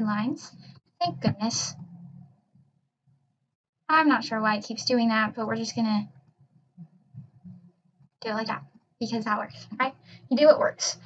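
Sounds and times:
woman speaking: 0.0 - 2.0, 3.9 - 6.1, 8.2 - 11.0.

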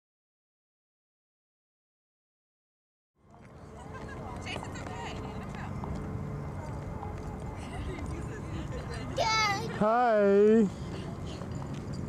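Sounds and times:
faint distant voices: 3.2 - 12.0.

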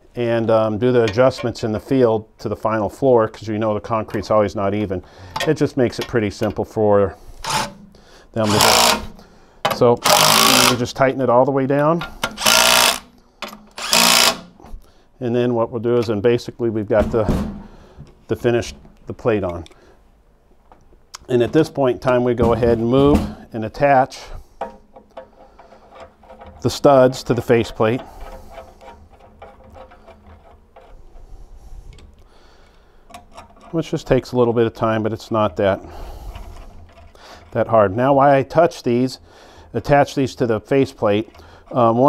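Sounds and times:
impact wrench hammering: 8.4 - 10.8, 12.2 - 14.5
metal studs clicking and tapping: 12.0 - 14.4, 24.6 - 31.0, 31.9 - 33.8.

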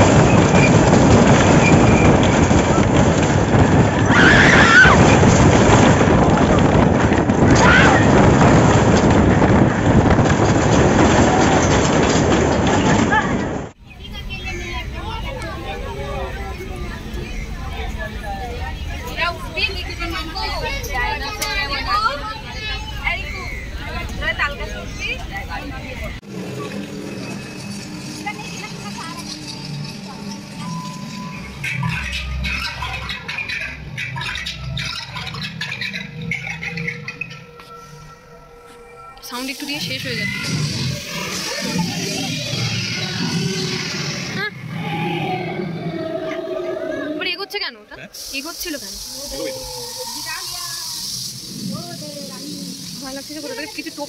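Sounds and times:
crowd voices and shrieks: 0.0 - 5.3, 14.0 - 54.0
rush of wind and track noise: 0.0 - 23.0.

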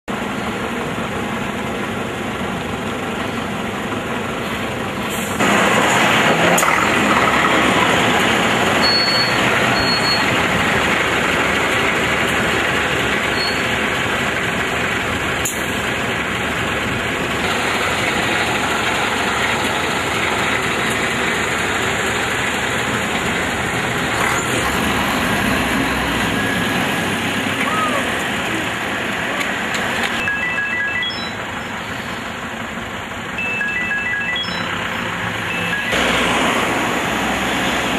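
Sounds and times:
vehicle engines running and idling: 0.0 - 37.9.

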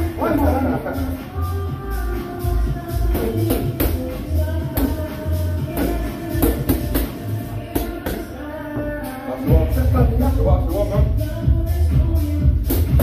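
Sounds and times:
gym music with singing: 0.0 - 13.0.

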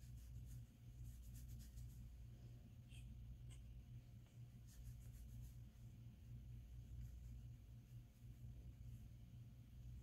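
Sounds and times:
fingers rubbing through hair: 0.0 - 10.0
low steady hum: 0.0 - 10.0.

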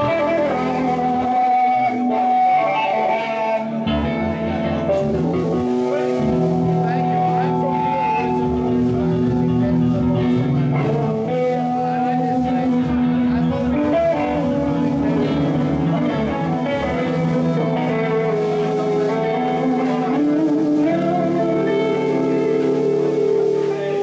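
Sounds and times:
electric guitar long held notes: 0.0 - 24.0
pulsing bass guitar line: 0.0 - 24.0.

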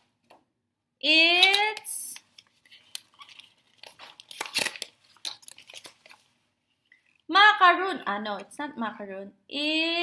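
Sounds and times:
plastic wrapper crinkling: 1.4 - 7.3
paper leaflet rustling: 2.3 - 6.4.

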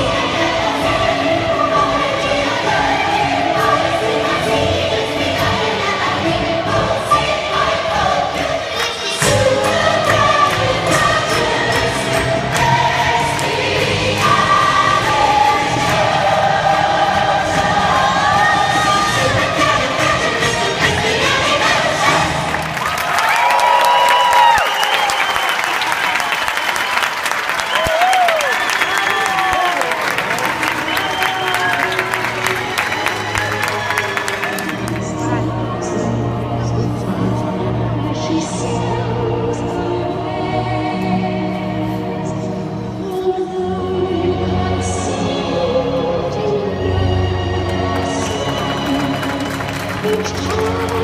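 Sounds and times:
show music with choir singing: 0.0 - 51.0
audience cheering and clapping: 22.0 - 35.3, 48.0 - 51.0
shouts and whistles: 23.1 - 32.1.

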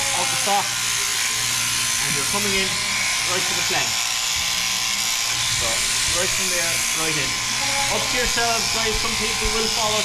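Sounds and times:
sheep shearing handpiece running: 0.0 - 10.0.

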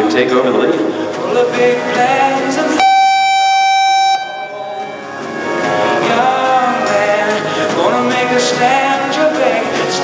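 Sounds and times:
country music: 0.0 - 10.0
electronic horn tone: 2.8 - 5.6.

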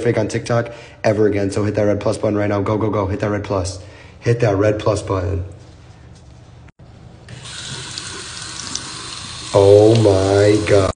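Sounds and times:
faucet water splashing into basin: 7.3 - 10.9.

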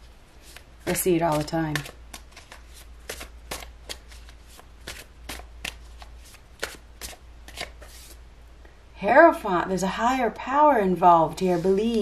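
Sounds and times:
cards shuffled by hand: 0.4 - 8.2.

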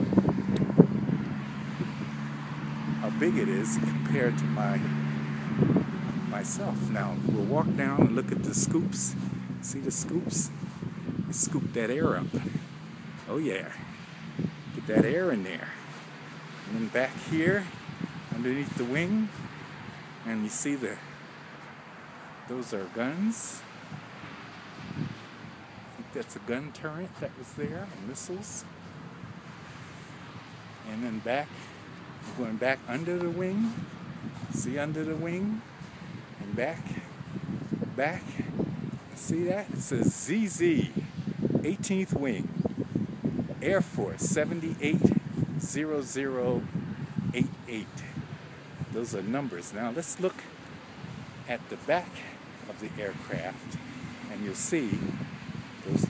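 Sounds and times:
outdoor background noise: 0.0 - 56.0.

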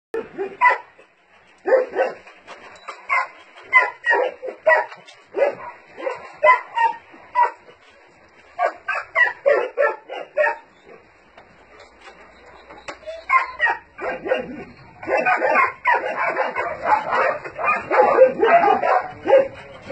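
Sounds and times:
dogs barking: 0.2 - 1.0, 1.6 - 2.2, 3.1 - 7.7, 8.6 - 11.0, 12.4 - 19.9.

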